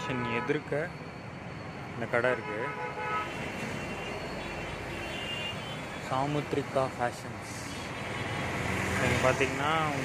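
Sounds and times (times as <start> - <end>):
street traffic hum: 0.0 - 10.0.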